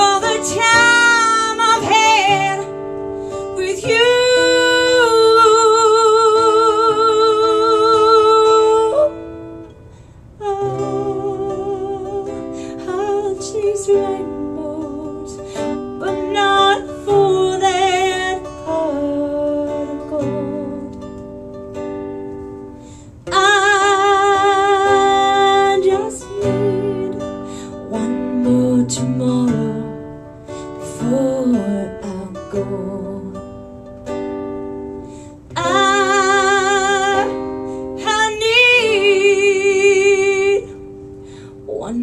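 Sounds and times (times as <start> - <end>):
acoustic guitar: 0.0 - 42.0.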